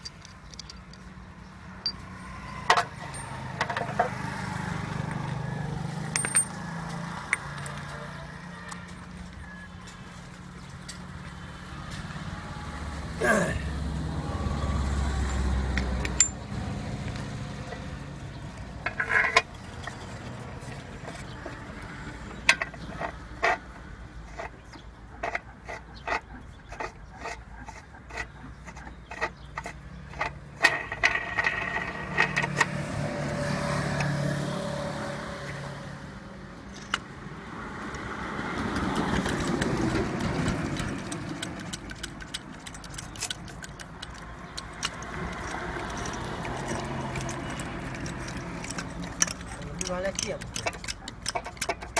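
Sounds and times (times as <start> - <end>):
passing traffic hum: 0.0 - 51.9
steel dies clinking: 6.0 - 7.9, 18.8 - 20.0, 40.2 - 51.9.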